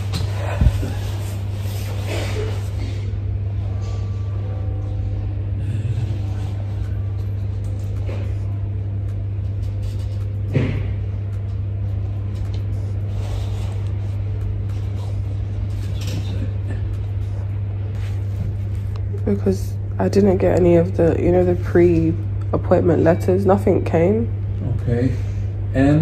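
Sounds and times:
machinery low hum: 0:00.0 - 0:26.0.

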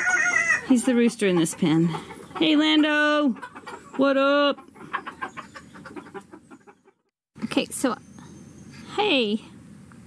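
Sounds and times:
chickens clucking: 0:00.0 - 0:07.1.

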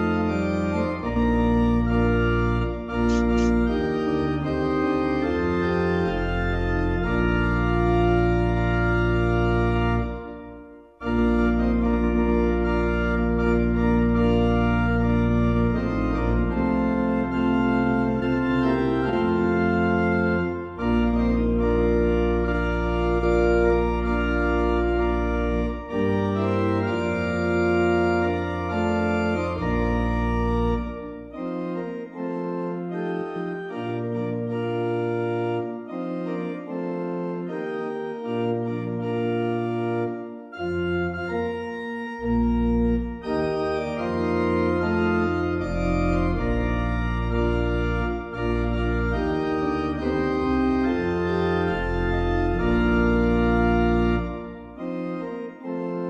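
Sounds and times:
church organ playing hymn: 0:00.0 - 0:56.0.

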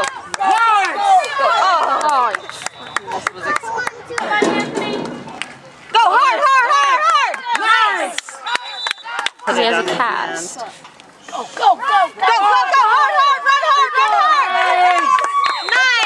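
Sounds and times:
spectators shouting and cheering: 0:00.0 - 0:10.2, 0:11.4 - 0:16.0.

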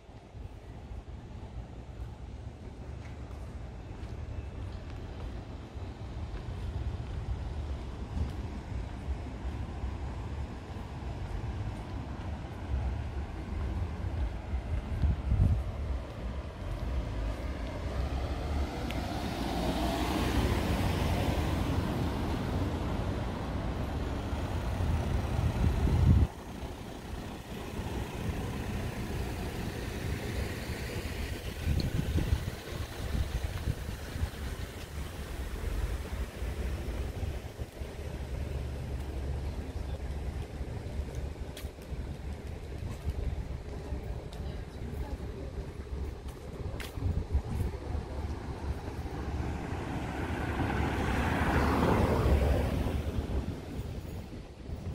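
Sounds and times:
low street rumble: 0:00.0 - 0:54.9
vehicle passing: 0:16.1 - 0:40.0, 0:47.2 - 0:54.9.

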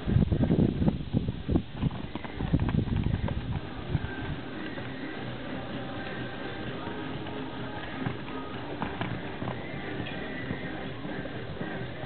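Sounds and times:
horse hooves thudding on sand: 0:01.4 - 0:12.0.

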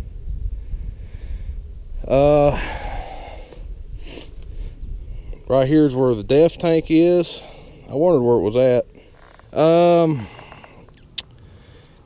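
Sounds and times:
person breathing out: 0:02.4 - 0:05.3, 0:10.1 - 0:12.0.

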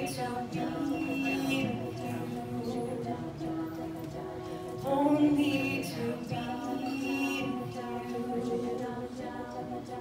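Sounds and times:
women singing wordless chords: 0:00.0 - 0:10.0.

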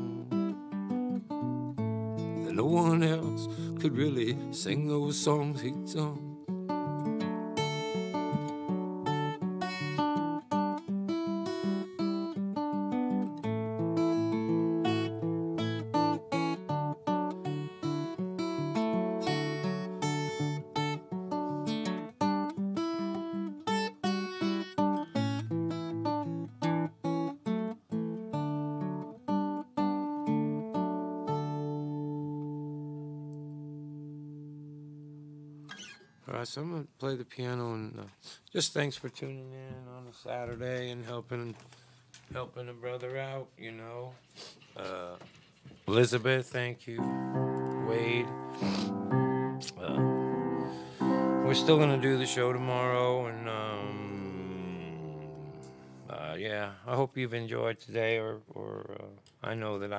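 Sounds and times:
solo acoustic guitar: 0:00.0 - 0:36.4, 0:46.9 - 0:57.0.

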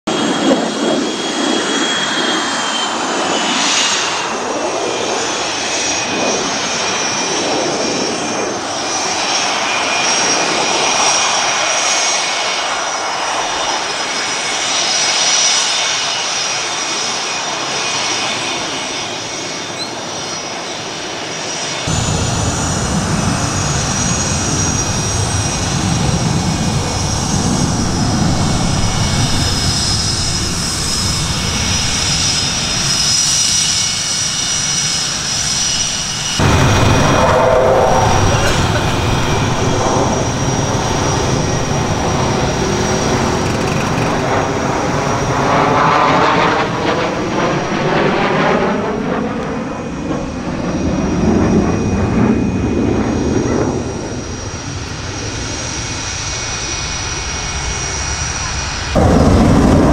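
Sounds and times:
jet engines whining: 0:00.1 - 0:59.9
exhaust rushing: 0:21.9 - 0:56.0, 0:57.2 - 0:59.9.

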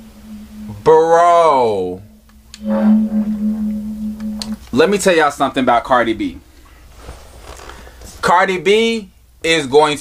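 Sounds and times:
low humming tone: 0:00.0 - 0:05.4.

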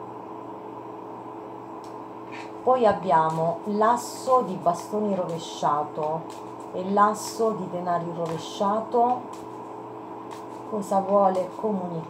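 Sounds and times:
low room hum with hiss: 0:00.0 - 0:12.0.

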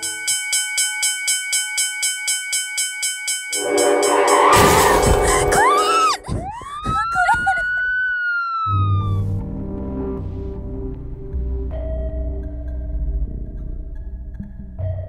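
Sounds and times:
loud crash: 0:03.6 - 0:06.3
pulsing tone: 0:03.6 - 0:06.3
siren-like wail: 0:03.6 - 0:09.3.

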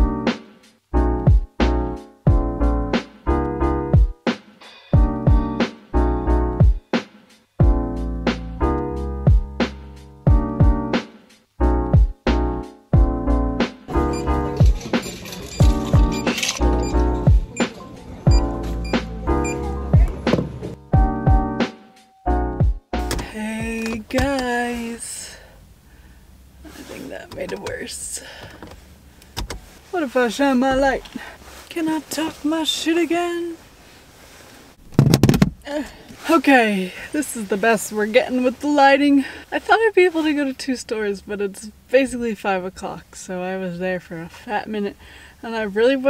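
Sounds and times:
chords over a beat: 0:00.0 - 0:14.1, 0:17.1 - 0:24.0.

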